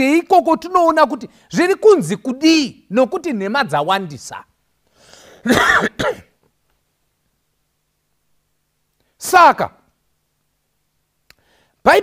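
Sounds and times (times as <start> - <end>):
man coughing: 5.3 - 6.4.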